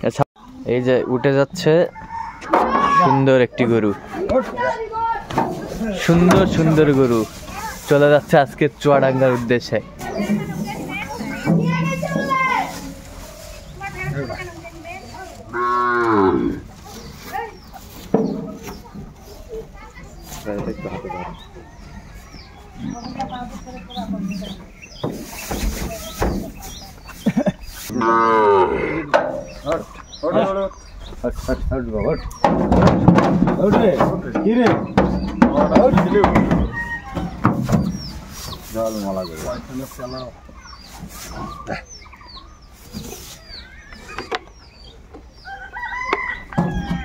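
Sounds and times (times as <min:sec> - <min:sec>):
rooster crowing: 0:01.9 - 0:02.9, 0:36.0 - 0:37.5, 0:45.4 - 0:47.0
chicken clucking: 0:03.8 - 0:28.2, 0:28.8 - 0:47.0
calf mooing: 0:15.5 - 0:16.6, 0:28.0 - 0:29.1.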